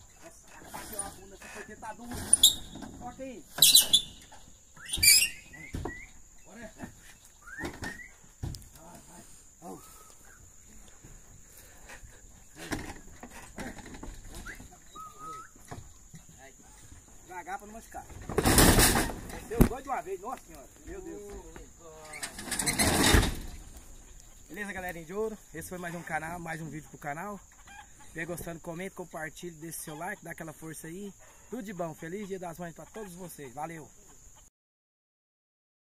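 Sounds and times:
birds chirping: 0.0s - 18.4s, 19.0s - 34.5s.

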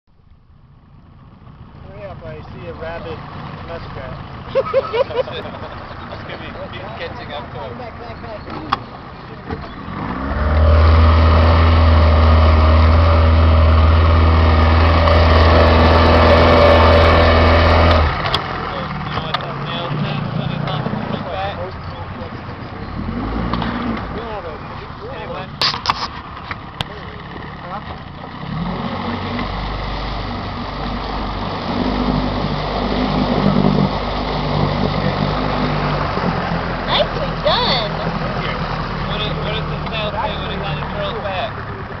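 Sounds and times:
boat motor running: 1.6s - 42.0s
indistinct voices: 34.6s - 42.0s.

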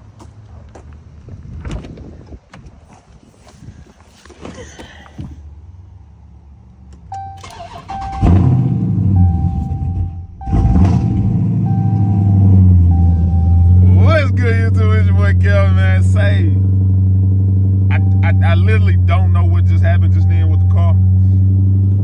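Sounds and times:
car engine starting and idling: 6.8s - 22.0s
warning chime beeps: 7.1s - 8.4s, 9.1s - 14.8s, 17.9s - 21.1s.

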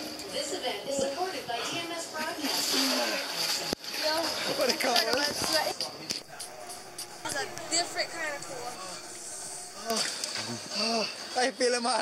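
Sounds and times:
onlookers' voices: 5.2s - 10.8s.

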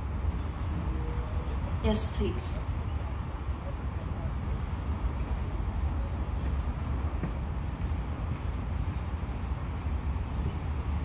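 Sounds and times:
low rumble of hall noise: 0.0s - 11.0s.

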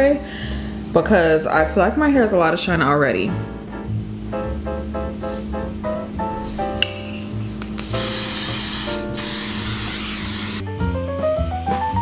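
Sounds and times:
background music: 0.0s - 12.0s
hairspray hissing: 5.2s - 10.6s.

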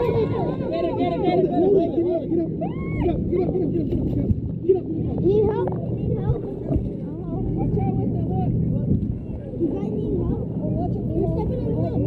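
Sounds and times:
people talking indistinctly: 0.0s - 12.0s
low engine hum: 2.4s - 12.0s.

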